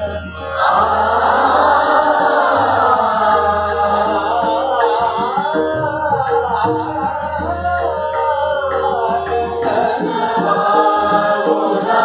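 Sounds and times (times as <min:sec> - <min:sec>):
students singing in unison: 0:00.0 - 0:12.0
tanpura drone: 0:00.0 - 0:12.0.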